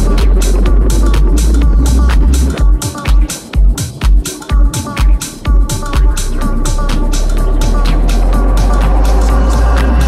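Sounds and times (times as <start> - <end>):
techno music: 0.0 - 10.0.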